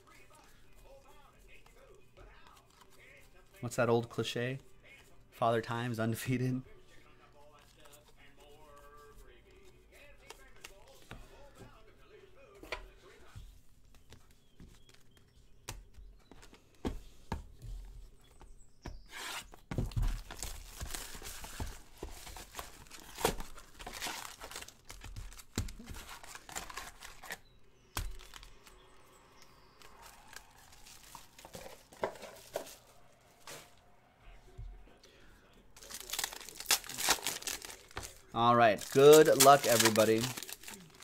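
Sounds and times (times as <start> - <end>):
card packs rustling: 0.0 - 4.6, 18.9 - 33.8, 35.7 - 41.0
plastic wrap tearing and crinkling: 20.2 - 27.4, 35.8 - 41.0
card pack ripped open: 22.4 - 27.4, 35.8 - 38.2, 38.8 - 41.0.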